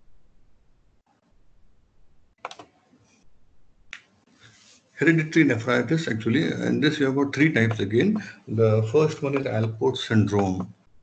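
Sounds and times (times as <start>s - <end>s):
sharp clicks: 2.4s - 2.7s, 9.2s - 10.9s.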